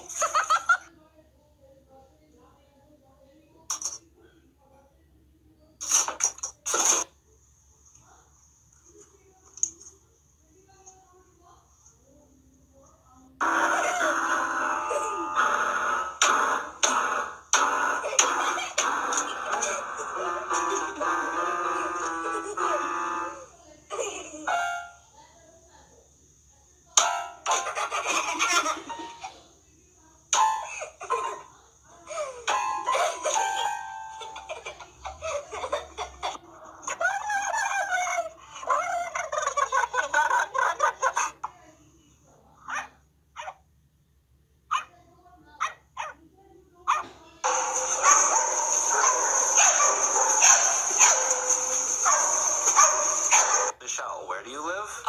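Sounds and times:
electronic keyboard note clusters: 0:13.4 - 0:23.5.

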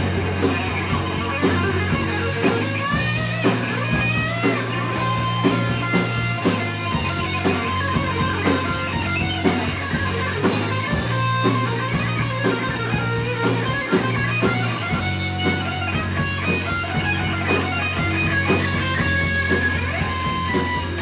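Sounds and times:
bass: 0:00.0 - 0:21.0
distorted electric guitars: 0:00.0 - 0:21.0
drums keeping steady beat: 0:00.0 - 0:21.0
lead guitar bending notes: 0:00.0 - 0:21.0.

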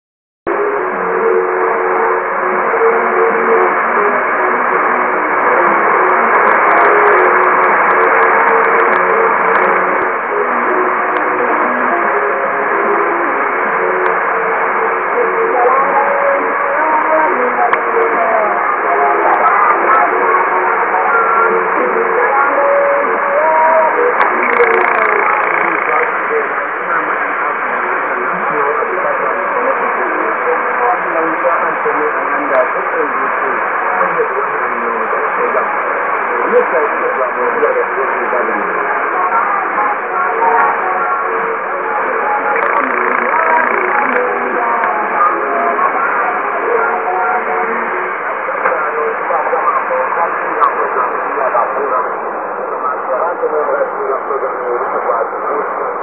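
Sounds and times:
faint radio voice: 0:00.5 - 0:56.0
radio static hiss: 0:00.5 - 0:56.0.

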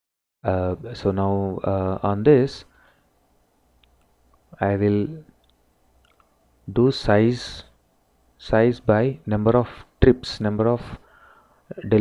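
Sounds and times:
man speaking: 0:00.5 - 0:02.7, 0:04.6 - 0:05.3, 0:06.7 - 0:07.8, 0:08.4 - 0:11.0, 0:11.7 - 0:12.0
faint computer mouse clicks: 0:05.4 - 0:06.3.

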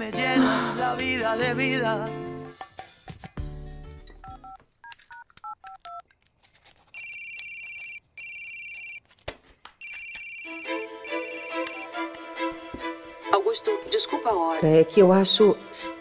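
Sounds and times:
background music: 0:00.0 - 0:04.6, 0:10.5 - 0:16.0
mobile phone ringing: 0:06.9 - 0:09.0, 0:09.8 - 0:11.9
phone keypad beeps: 0:07.0 - 0:09.0, 0:09.8 - 0:11.9.

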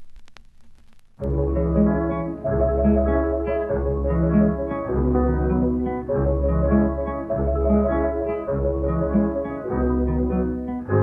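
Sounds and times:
jazz band holding chords: 0:01.2 - 0:11.0
long bass notes: 0:01.2 - 0:11.0.

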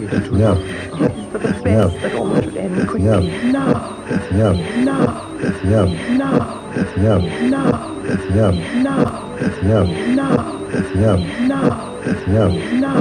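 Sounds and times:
looped treated vocal fragment: 0:00.0 - 0:13.0.

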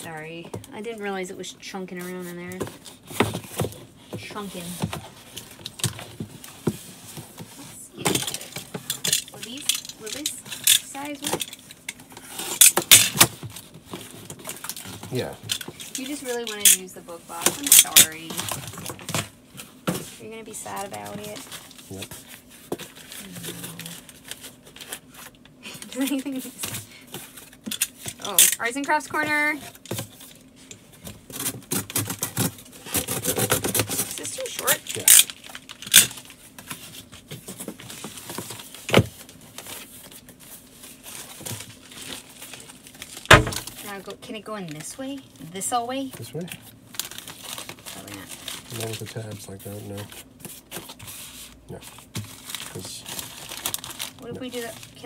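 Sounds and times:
cardboard crinkling and rustling: 0:01.8 - 0:55.0.

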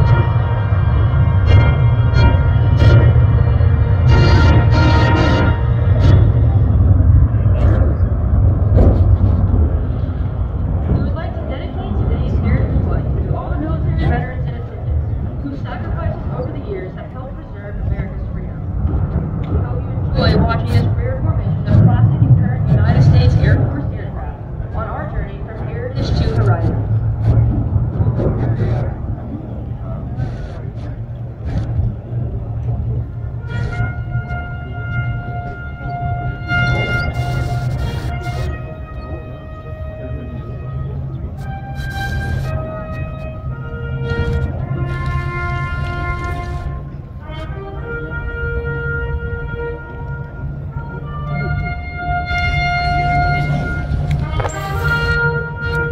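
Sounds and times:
held musical chord: 0:00.0 - 0:08.4, 0:32.1 - 0:55.9
music: 0:00.0 - 0:09.5, 0:15.4 - 0:55.9
distant aircraft rumble: 0:00.0 - 0:55.9
public address speech: 0:10.9 - 0:18.7, 0:19.5 - 0:27.4.

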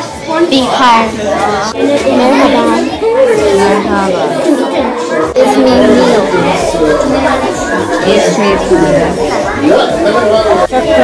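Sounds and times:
children talking in echoing room: 0:00.0 - 0:11.0.

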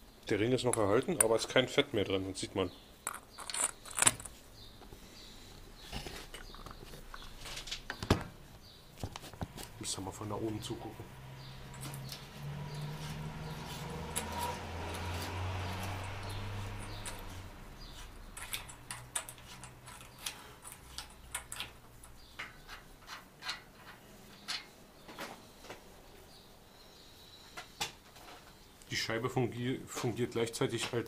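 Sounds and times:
light metallic clicks and clinks: 0:11.7 - 0:12.8, 0:15.8 - 0:17.5, 0:18.3 - 0:22.5.

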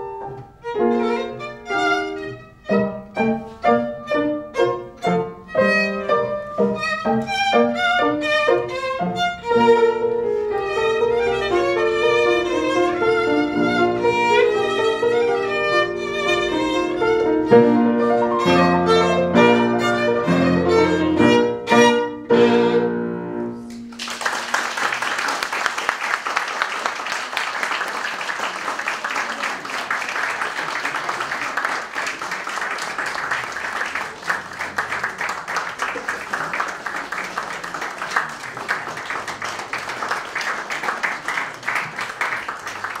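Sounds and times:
violin: 0:00.0 - 0:23.6
piano: 0:00.0 - 0:43.0
audience applauding: 0:23.8 - 0:43.0.

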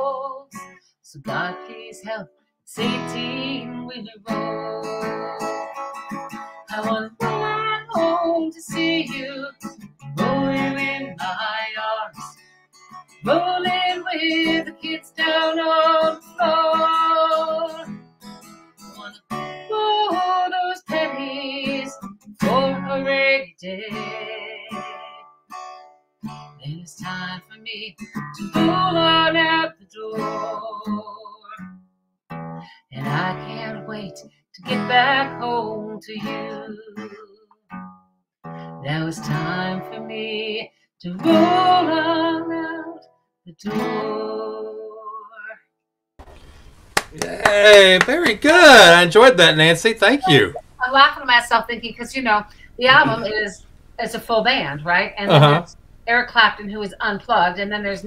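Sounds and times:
woman singing: 0:00.0 - 0:00.5, 0:01.1 - 0:05.7, 0:06.7 - 0:12.3, 0:13.2 - 0:17.8, 0:19.7 - 0:25.2, 0:26.6 - 0:31.6, 0:32.9 - 0:37.4, 0:38.8 - 0:45.6, 0:50.2 - 0:58.0
strummed acoustic guitar: 0:02.8 - 0:11.6, 0:12.2 - 0:23.0, 0:46.4 - 0:50.6, 0:52.8 - 0:53.5.

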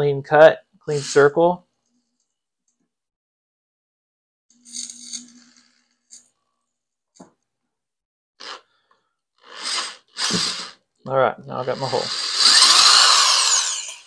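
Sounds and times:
electric drill boring into metal: 0:11.8 - 0:14.0.

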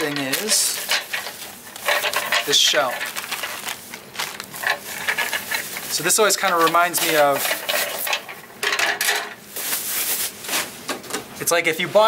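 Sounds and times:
plastic packaging crinkling: 0:00.0 - 0:08.4, 0:09.4 - 0:10.7.

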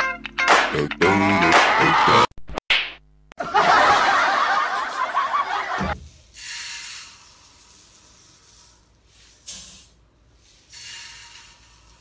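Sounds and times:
laughter: 0:01.4 - 0:02.3, 0:03.4 - 0:06.0.

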